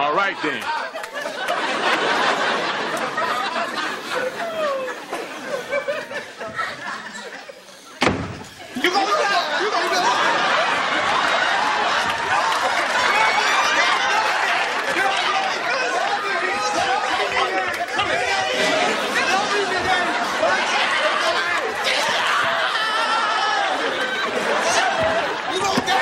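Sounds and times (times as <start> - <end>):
babble of voices: 2.2 - 26.0
sharp slam: 8.0 - 8.5.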